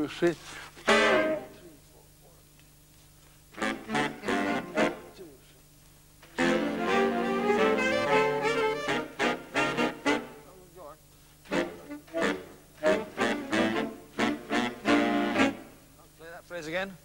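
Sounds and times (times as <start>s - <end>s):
saxophone section playing jazz: 0.8s - 2.0s, 3.5s - 5.5s, 6.2s - 16.1s.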